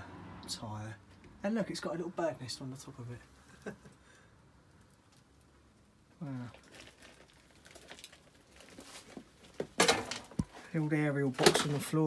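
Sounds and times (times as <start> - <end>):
footsteps among debris: 6.6 - 12.0.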